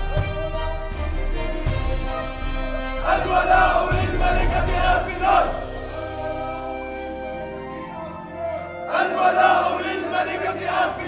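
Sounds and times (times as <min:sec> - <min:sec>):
background music with low drum beats: 0:00.0 - 0:08.2
men shouting in unison: 0:02.8 - 0:11.0.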